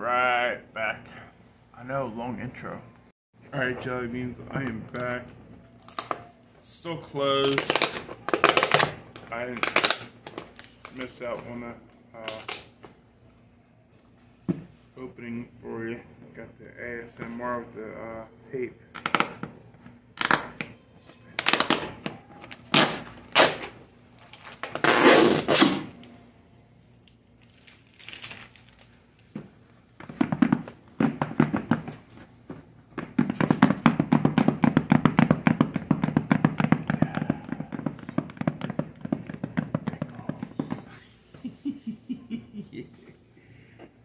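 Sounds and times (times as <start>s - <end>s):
packing tape ripping off cardboard: 7.4s - 10.8s, 21.4s - 22.0s, 22.6s - 26.0s, 27.4s - 28.9s.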